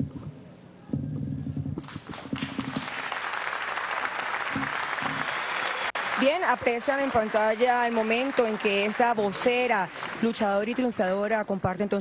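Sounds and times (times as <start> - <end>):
large audience applauding: 1.8 - 10.9.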